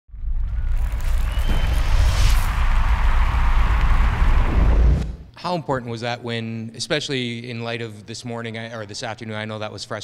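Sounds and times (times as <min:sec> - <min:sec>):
deep rumble: 0:00.1 - 0:05.3
rushing whoosh: 0:00.6 - 0:05.3.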